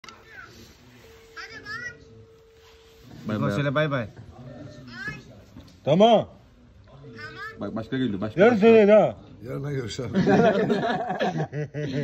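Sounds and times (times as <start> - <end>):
faint high-pitched voice: 0.0 - 2.2.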